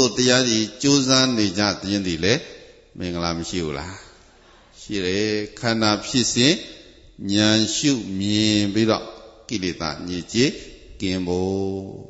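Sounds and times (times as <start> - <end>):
man chanting into microphone: 0.0 - 12.0.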